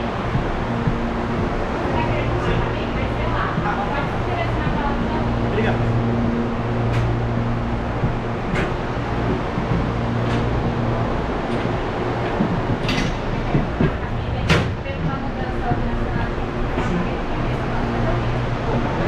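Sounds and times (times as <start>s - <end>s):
knocks and clacks of doors: 0.0s - 5.0s, 6.8s - 16.9s
train equipment hum: 0.0s - 19.0s.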